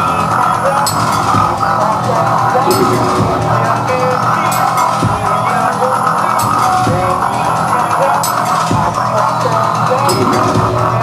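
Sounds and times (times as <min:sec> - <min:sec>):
drum kit: 0:00.0 - 0:11.0
keyboard: 0:00.0 - 0:11.0
steady low drone: 0:00.0 - 0:11.0.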